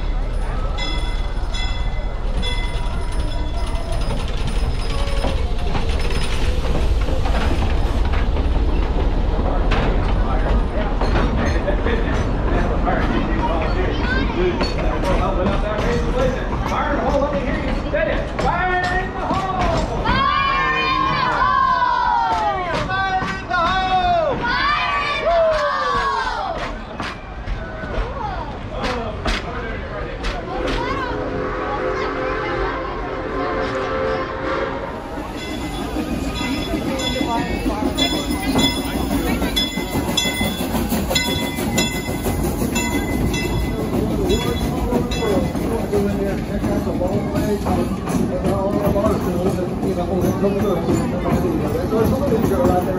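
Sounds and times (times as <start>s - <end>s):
train wheels squealing: 0.0s - 6.9s, 35.2s - 46.3s
wheels clicking over rail joints: 0.0s - 31.1s, 35.0s - 52.9s
train whistle: 31.1s - 35.0s.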